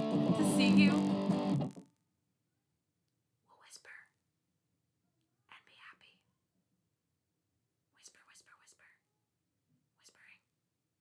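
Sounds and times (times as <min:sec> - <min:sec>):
woman whispering: 0:03.5 - 0:04.2, 0:05.5 - 0:06.3, 0:07.9 - 0:09.1, 0:10.0 - 0:10.5.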